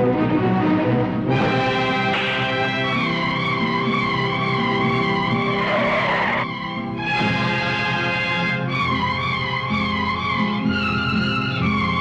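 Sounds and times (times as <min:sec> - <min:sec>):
film music with held notes: 0:00.0 - 0:12.0.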